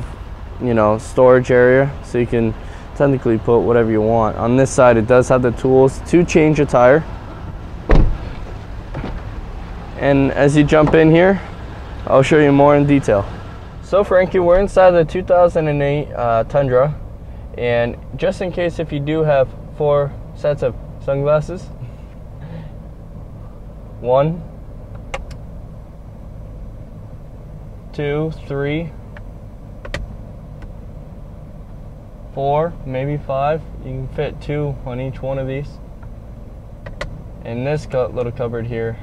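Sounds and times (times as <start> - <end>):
vehicle rumble inside cab: 0.0 - 39.0
truck door shutting with a thud: 7.8 - 9.3.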